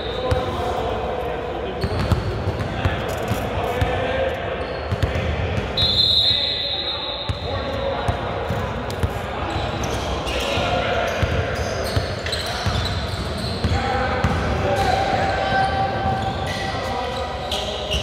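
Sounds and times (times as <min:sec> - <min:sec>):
indistinct echoing voices: 0:07.5 - 0:18.0.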